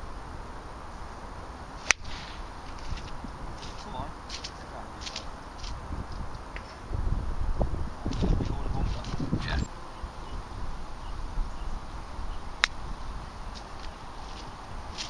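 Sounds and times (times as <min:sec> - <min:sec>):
low rumbling noise: 0:00.0 - 0:15.0
golf club striking ball: 0:01.8 - 0:05.3.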